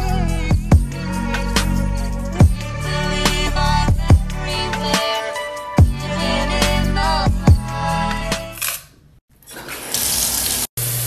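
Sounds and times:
shower water running: 9.4s - 11.0s.

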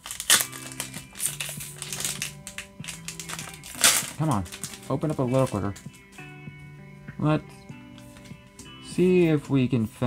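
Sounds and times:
foil wrapper tearing: 0.0s - 6.2s
foil wrapper crinkling: 0.0s - 6.3s.

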